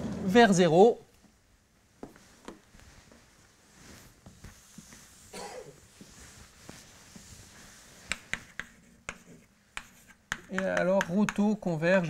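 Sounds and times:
chalk tapping on blackboard: 0:06.7 - 0:11.6.

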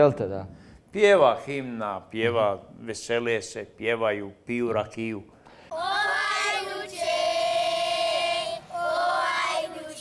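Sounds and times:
children singing in unison: 0:05.7 - 0:10.0.

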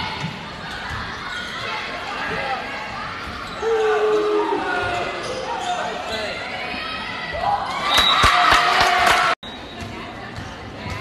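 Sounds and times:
sneakers squeaking: 0:03.1 - 0:06.5, 0:09.4 - 0:11.0.

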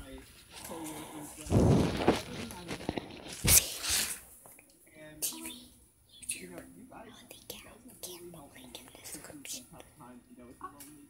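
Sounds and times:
child whispering: 0:05.2 - 0:09.9.

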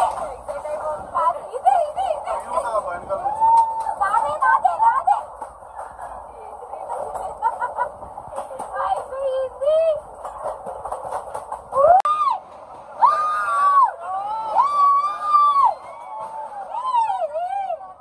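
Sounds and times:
background chatter: 0:00.0 - 0:18.0.

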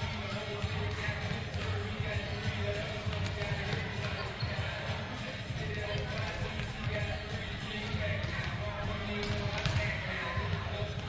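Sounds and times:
balls thudding off arms: 0:00.0 - 0:11.0
balls bouncing on wooden floor: 0:02.5 - 0:04.5, 0:07.9 - 0:11.0.

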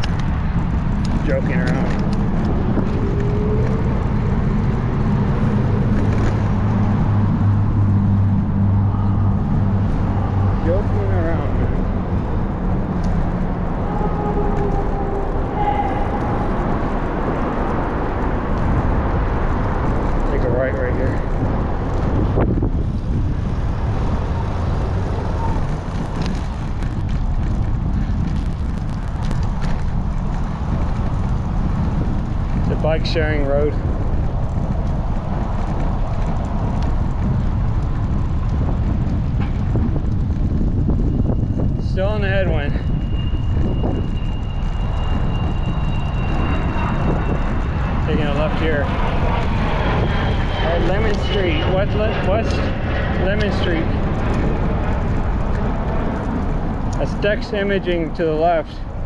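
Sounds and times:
low steady drone: 0:00.0 - 0:59.0
road traffic: 0:00.0 - 0:59.0
wind on microphone: 0:00.0 - 0:59.0.

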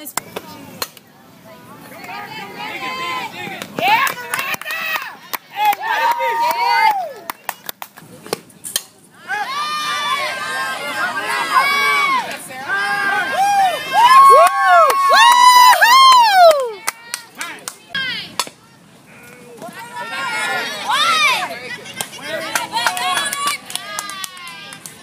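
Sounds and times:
girls shouting and cheering: 0:02.0 - 0:07.3, 0:09.2 - 0:18.9, 0:19.6 - 0:25.0.

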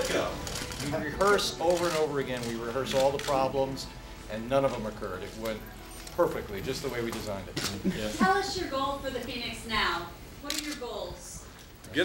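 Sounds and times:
man speaking: 0:06.2 - 0:08.3.

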